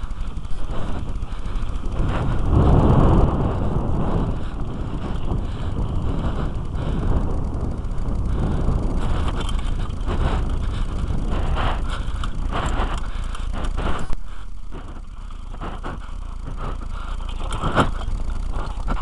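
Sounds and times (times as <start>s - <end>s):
bike knocks and rattles: 0.0s - 19.0s
wind rumbling on microphone: 0.0s - 19.0s.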